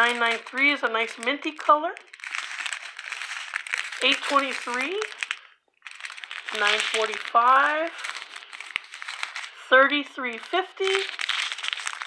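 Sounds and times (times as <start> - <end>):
plastic bags crinkling: 0.0 - 9.6, 10.2 - 12.0.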